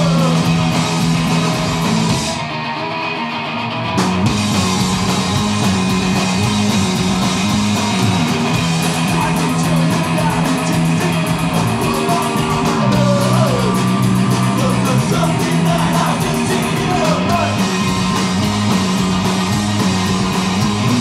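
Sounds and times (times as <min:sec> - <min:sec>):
punk rock band playing: 0:00.0 - 0:21.0.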